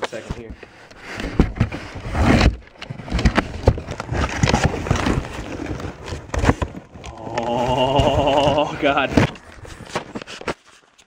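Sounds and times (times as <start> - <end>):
cardboard rustling and scraping: 0.0 - 11.0
knocks and thumps: 0.3 - 10.5.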